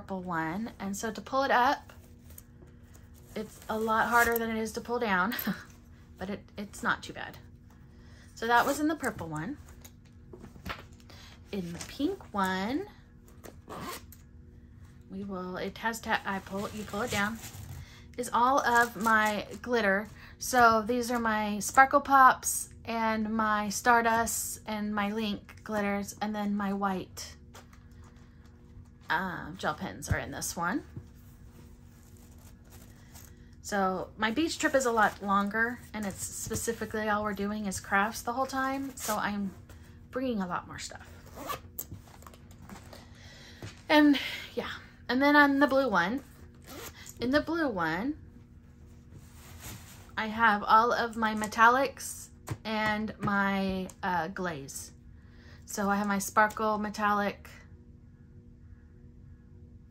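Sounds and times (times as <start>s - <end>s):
pencil case zipper: 13.4s - 14.2s, 41.0s - 42.3s
pencil case zipper opening: 13.4s - 14.2s.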